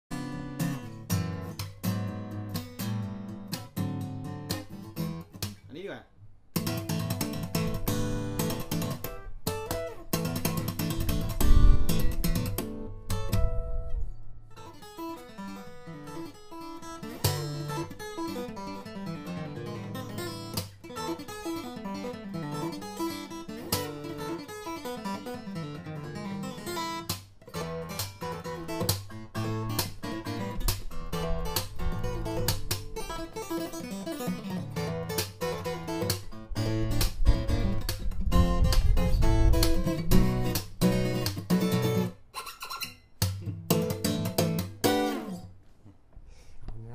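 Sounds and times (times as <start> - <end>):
acoustic guitar fingerstyle: 0.1 - 46.2.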